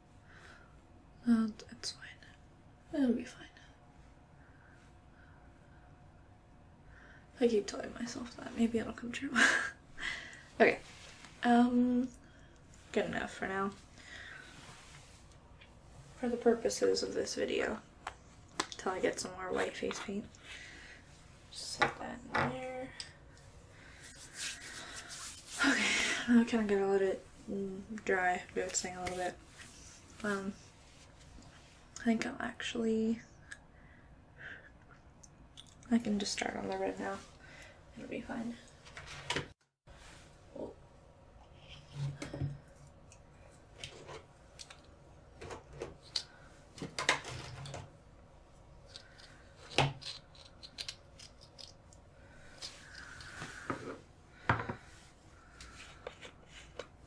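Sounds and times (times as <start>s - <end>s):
woman speaking: 1.2s - 2.1s, 2.9s - 3.5s, 7.4s - 9.6s, 10.6s - 12.1s, 12.9s - 13.8s, 16.2s - 17.8s, 18.8s - 20.3s, 21.5s - 23.0s, 25.6s - 29.4s, 30.2s - 30.6s, 32.0s - 33.2s, 35.9s - 37.3s, 38.0s - 38.6s
soft rubbing and rustling: 10.6s - 12.0s, 12.8s - 20.3s, 23.4s - 31.9s
short scratchy rubs: 24.0s - 25.6s.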